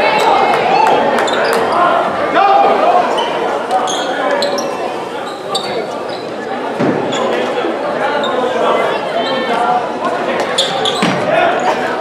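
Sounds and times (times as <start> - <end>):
crowd and player voices: 0.0 - 12.0
sneakers squeaking on floor: 1.2 - 1.9, 3.1 - 9.6, 10.3 - 11.8.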